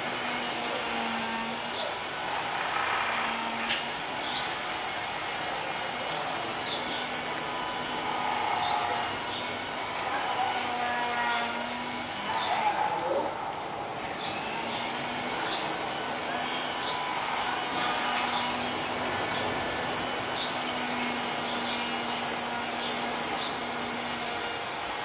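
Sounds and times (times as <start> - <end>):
birds chirping: 4.2 - 4.6, 6.5 - 7.2, 8.3 - 9.6, 10.2 - 25.0.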